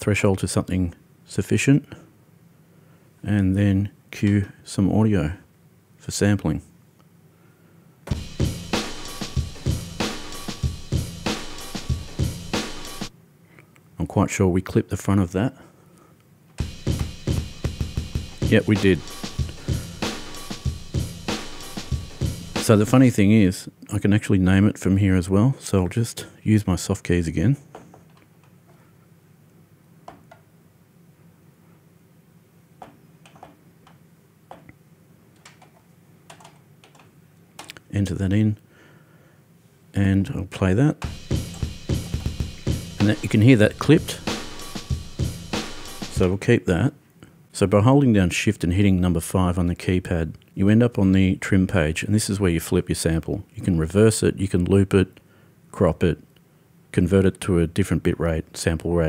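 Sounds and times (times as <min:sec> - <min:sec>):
recorded drum beat: 0:08.1 - 0:13.1, 0:16.6 - 0:23.0, 0:41.0 - 0:46.4.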